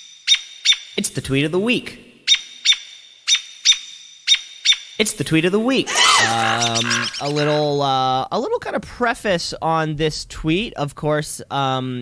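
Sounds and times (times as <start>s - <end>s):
bird chirps: 5.8s - 7.6s.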